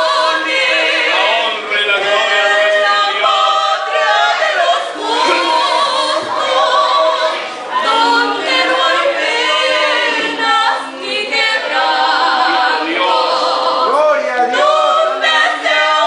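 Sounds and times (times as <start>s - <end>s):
two women singing unaccompanied: 0.0s - 16.0s.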